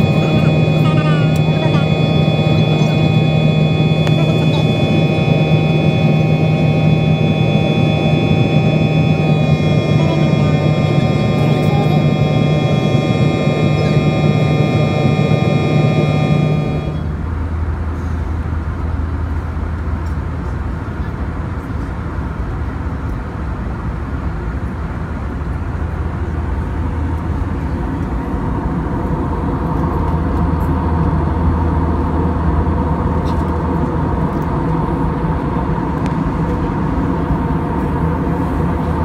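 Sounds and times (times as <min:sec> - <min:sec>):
jet engines whining: 0:00.0 - 0:39.0
low cabin hum: 0:00.0 - 0:39.0.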